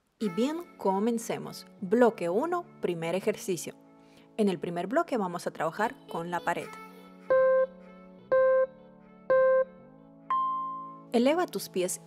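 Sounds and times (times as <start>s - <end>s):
soft background music: 0.0s - 12.0s
countdown timer beeps: 7.3s - 7.7s, 8.3s - 8.7s, 9.3s - 10.9s.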